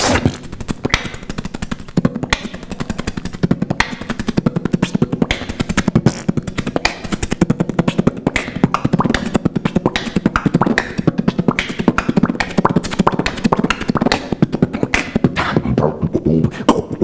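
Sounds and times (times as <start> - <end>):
person beatboxing: 0.0 - 17.0.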